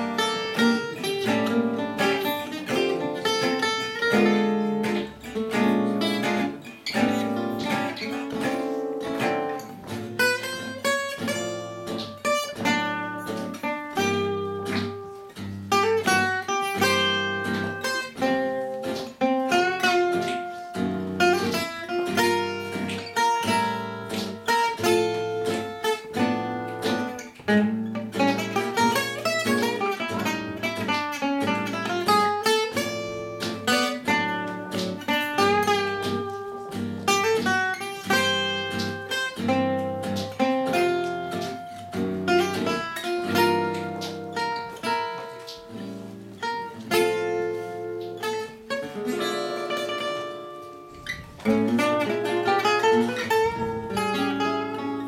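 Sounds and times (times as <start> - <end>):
acoustic guitar runs and chords: 0.0 - 55.0
rhythm guitar accompaniment: 0.0 - 55.0.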